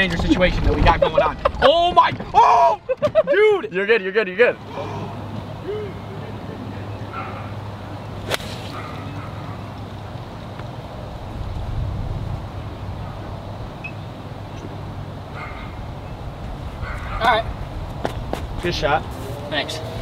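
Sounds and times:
golf ball struck with a club: 8.2 - 8.8.

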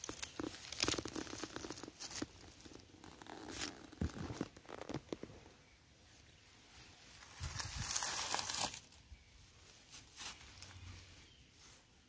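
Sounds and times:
dry leaves rustling and crackling: 0.0 - 4.9, 7.1 - 9.0.

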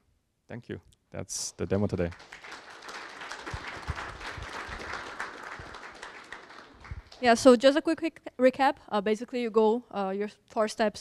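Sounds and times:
audience applauding: 1.7 - 7.4.

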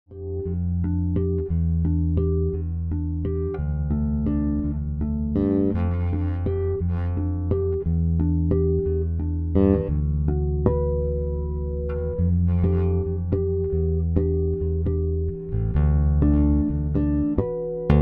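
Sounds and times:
plucked electric bass line: 0.1 - 18.0.

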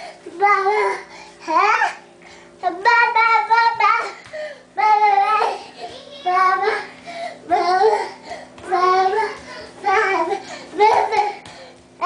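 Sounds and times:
toddler singing: 4.8 - 6.9, 7.5 - 11.4.

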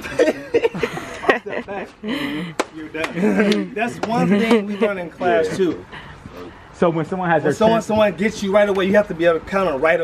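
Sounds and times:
men talking and laughing: 0.0 - 10.0.

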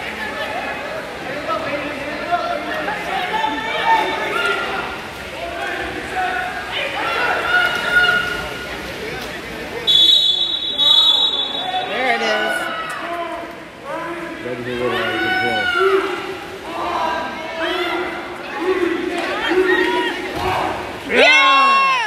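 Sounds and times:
spectators' voices and shouts: 0.0 - 22.0
referee's whistle blasts: 9.9 - 11.9.

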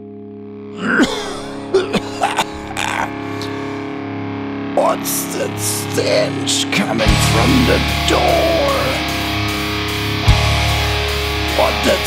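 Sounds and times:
distorted electric guitar chord: 0.0 - 12.0
person singing: 4.8 - 9.1, 11.6 - 12.0.

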